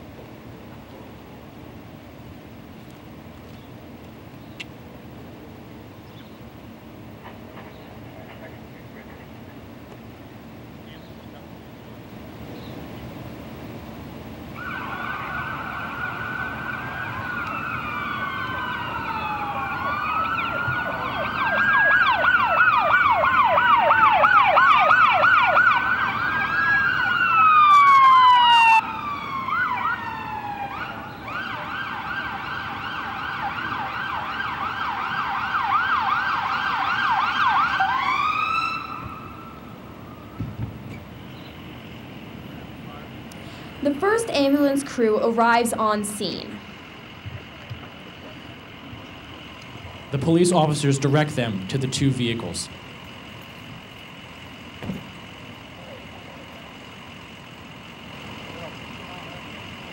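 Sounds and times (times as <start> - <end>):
emergency vehicle sirens: 0.0 - 59.9.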